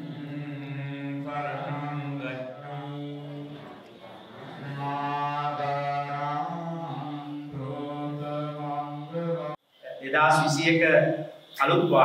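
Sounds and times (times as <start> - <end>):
monks chanting over a microphone: 0.0 - 9.6.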